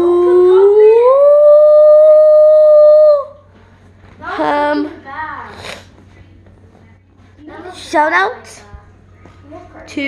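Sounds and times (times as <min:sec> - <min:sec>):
boy singing long ooo note: 0:00.0 - 0:03.4.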